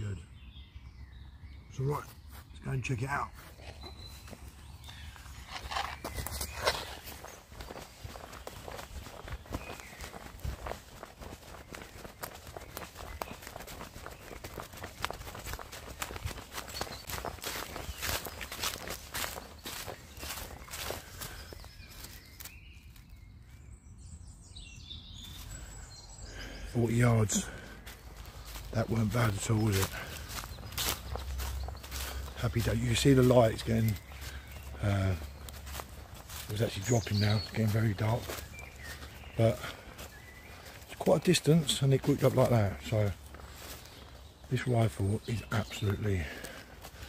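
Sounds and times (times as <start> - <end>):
footsteps on dry leaves: 2.2 - 23.6, 25.2 - 47.0.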